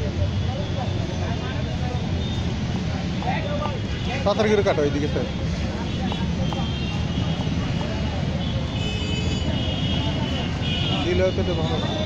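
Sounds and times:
city street traffic rumble: 0:00.0 - 0:12.0.

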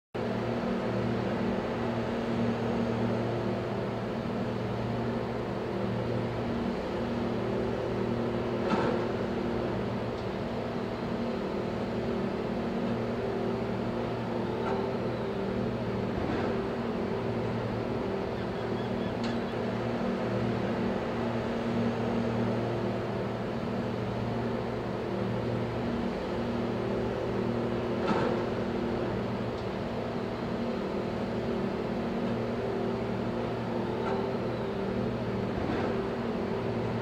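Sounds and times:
low mechanical hum: 0:00.2 - 0:37.0.

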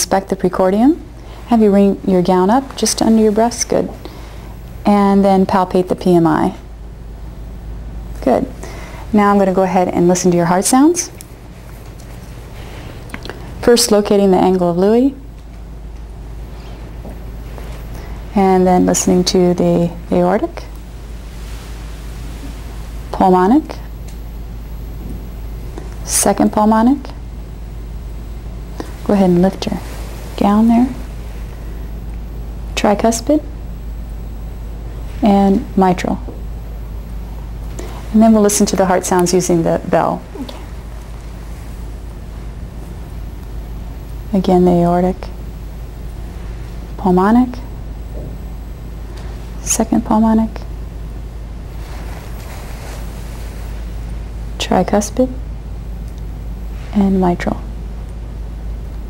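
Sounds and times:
faint high whine: 0:00.0 - 0:59.0
low hum: 0:00.0 - 0:59.0.

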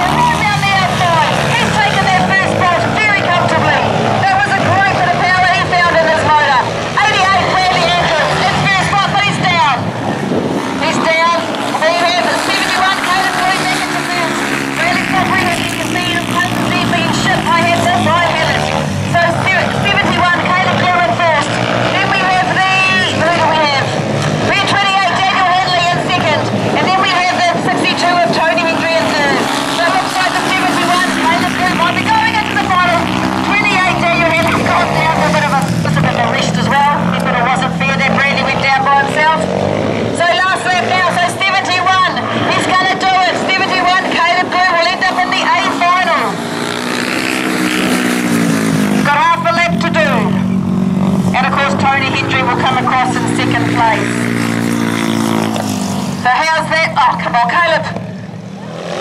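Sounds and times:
racing motorcycle engines: 0:00.0 - 0:59.0.

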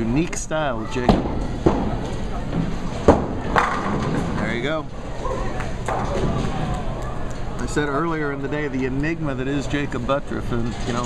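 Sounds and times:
bowling ball rolling: 0:01.0 - 0:07.4.

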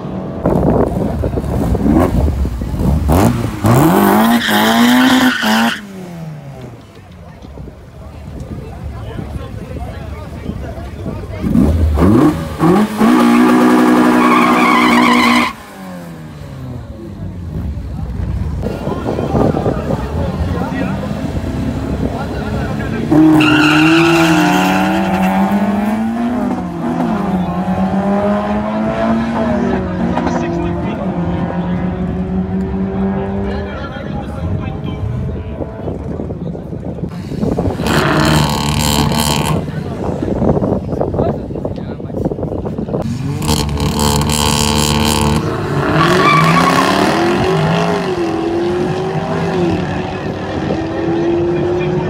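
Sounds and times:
cars accelerating away: 0:00.0 - 0:06.8, 0:11.3 - 0:34.1, 0:37.1 - 0:40.5, 0:43.0 - 0:52.0
car engine revving: 0:00.5 - 0:06.6, 0:11.3 - 0:33.9, 0:37.1 - 0:40.5, 0:43.0 - 0:52.0
tyres squealing: 0:13.2 - 0:15.6.

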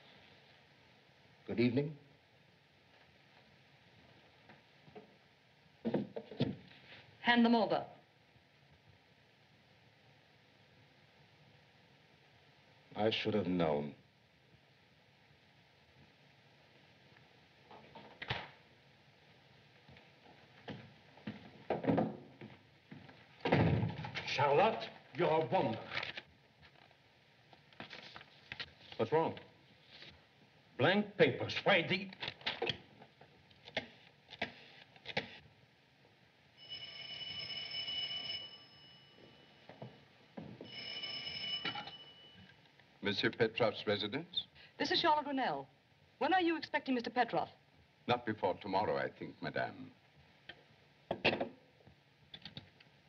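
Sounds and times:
film soundtrack hiss: 0:00.0 - 0:53.0
knocks and scuffs of people moving: 0:20.2 - 0:23.3
telephone bell ringing: 0:36.6 - 0:39.6, 0:40.6 - 0:42.5.

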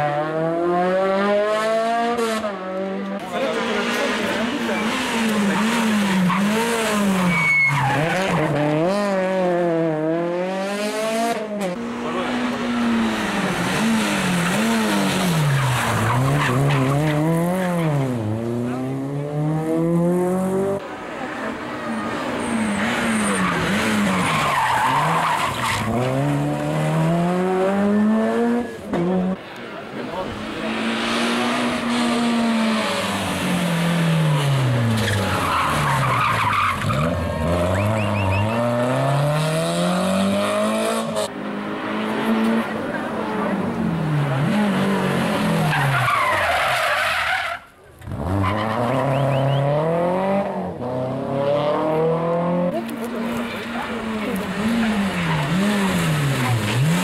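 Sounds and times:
rally car engines revving: 0:00.0 - 0:57.0
tyres skidding on tarmac: 0:03.2 - 0:09.8, 0:11.6 - 0:19.3, 0:20.8 - 0:57.0.

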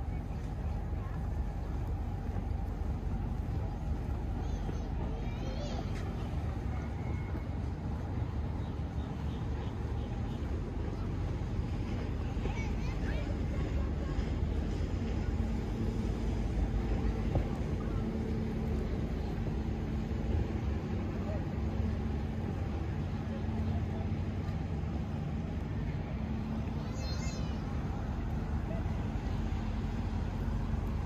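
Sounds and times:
distant voices: 0:00.0 - 0:31.0
faint engine drone: 0:00.0 - 0:31.0
steady low rumble: 0:00.0 - 0:31.0.

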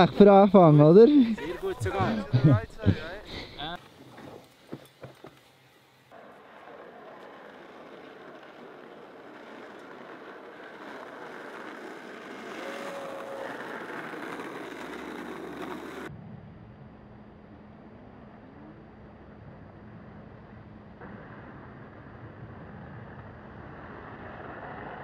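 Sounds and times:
road traffic hiss: 0:00.0 - 0:09.4.

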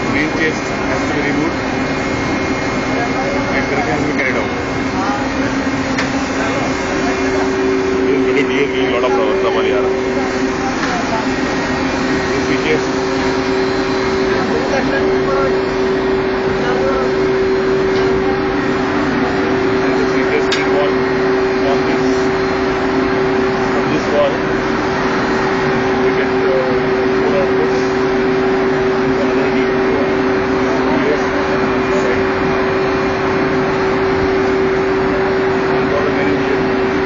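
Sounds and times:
engine-room machinery humming: 0:00.0 - 0:37.0
faint voices: 0:00.0 - 0:37.0
steady pitched tone: 0:00.0 - 0:37.0.

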